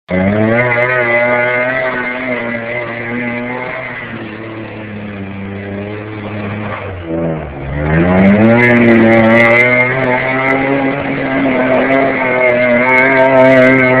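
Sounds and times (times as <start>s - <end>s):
engine revving hard: 0.1s - 14.0s.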